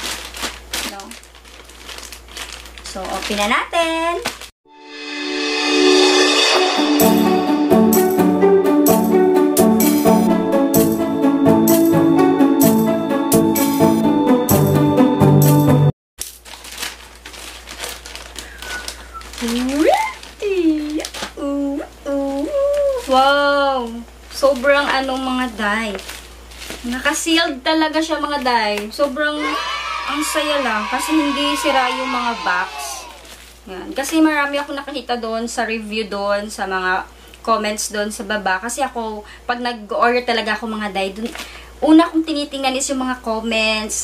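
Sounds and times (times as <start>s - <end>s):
plastic pouch crinkling: 0.0s - 4.5s, 16.2s - 21.5s, 22.1s - 27.4s, 33.2s - 33.6s
woman's voice: 0.9s - 1.2s, 2.8s - 4.3s, 19.4s - 26.0s, 26.8s - 44.0s.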